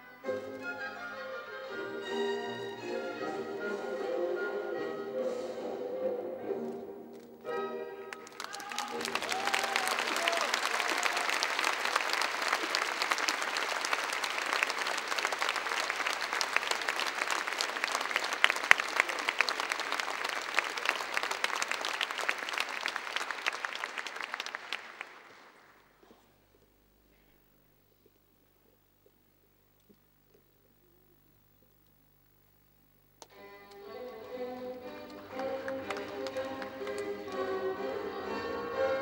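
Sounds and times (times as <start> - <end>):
orchestral notes: 0.0 - 8.4, 33.3 - 39.0
audience applauding: 8.1 - 26.1, 33.7 - 39.0.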